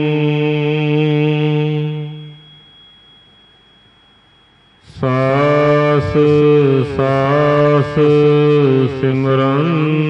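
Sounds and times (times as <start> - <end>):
person chanting: 0.0 - 2.6, 4.9 - 10.0.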